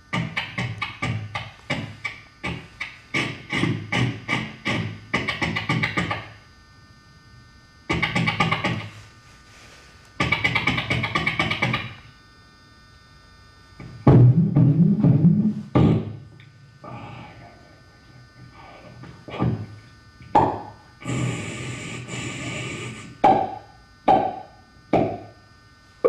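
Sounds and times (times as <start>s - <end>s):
beatboxing clicking mouth sounds: 0.1s - 6.4s, 7.9s - 8.9s, 10.2s - 12.0s, 20.2s - 25.2s.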